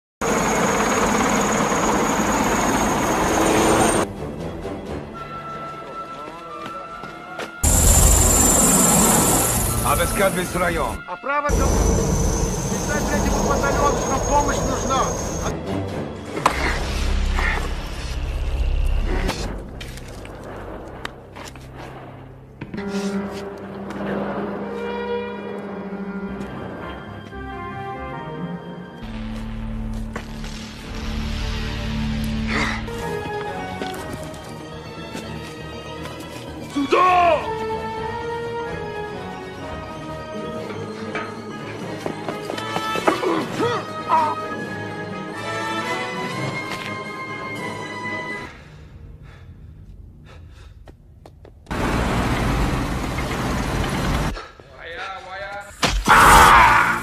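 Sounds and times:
helicopter rotor and turbine: 0.2 - 4.1, 7.6 - 10.7, 11.5 - 16.1, 51.7 - 54.4.

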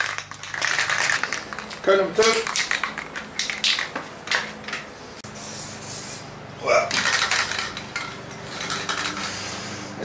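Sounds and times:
aerosol can ball rattling: 0.0 - 4.4, 6.9 - 9.4.

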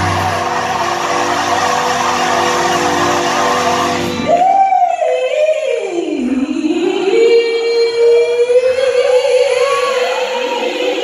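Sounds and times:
gospel choir holding chord: 0.0 - 11.0.

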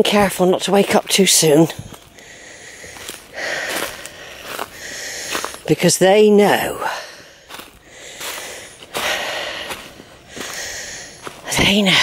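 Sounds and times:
person breathing heavily: 1.7 - 5.7, 6.8 - 12.0.

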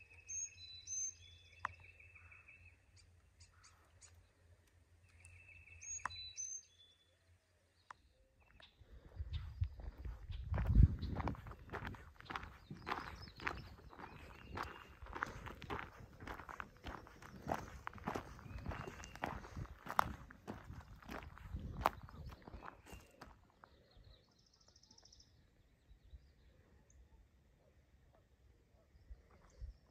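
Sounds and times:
footsteps on gravel: 9.8 - 23.4.

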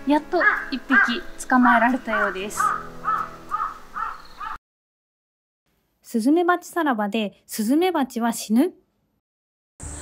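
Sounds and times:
bird calling: 0.4 - 4.6.

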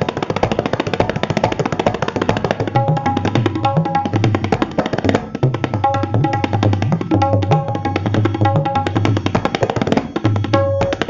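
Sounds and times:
tabla drumming: 0.0 - 11.0.

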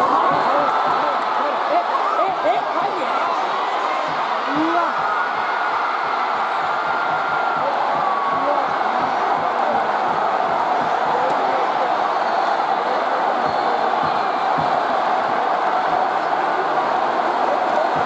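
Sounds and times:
stadium crowd cheering: 0.0 - 18.0.

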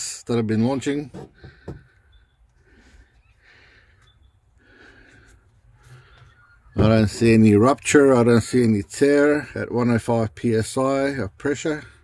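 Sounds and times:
soft breathing: 1.3 - 6.6.

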